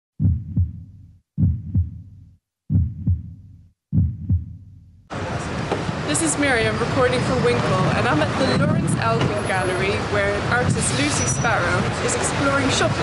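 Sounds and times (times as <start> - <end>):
heartbeat double thumps: 0.2 - 5.0
street noise: 5.1 - 13.0.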